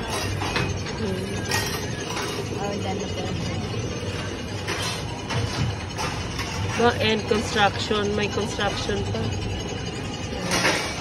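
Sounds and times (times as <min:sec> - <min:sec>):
ride car rumbling on track: 0:00.0 - 0:11.0.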